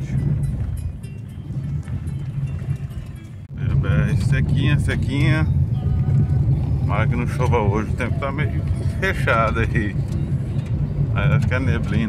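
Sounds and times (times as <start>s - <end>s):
car engine and tyres rumbling: 0.0s - 12.0s
music playing in car: 0.0s - 12.0s.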